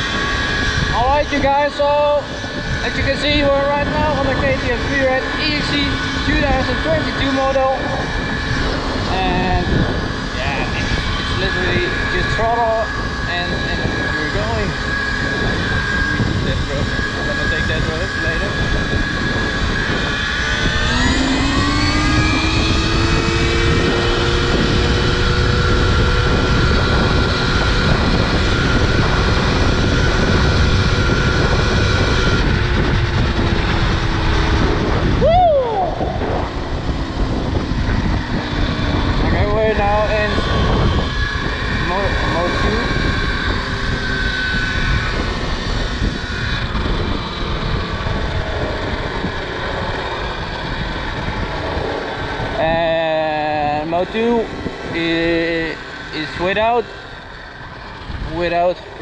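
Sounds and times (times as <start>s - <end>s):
electric motor whining: 0.0s - 59.0s
wind rushing: 0.0s - 59.0s.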